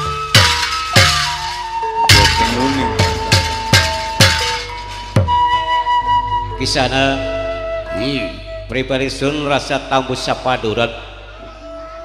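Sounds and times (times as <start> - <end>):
metallic clashing strikes: 0.0 - 5.4
low drum thuds: 0.0 - 5.6
held wind instrument note: 0.0 - 8.8.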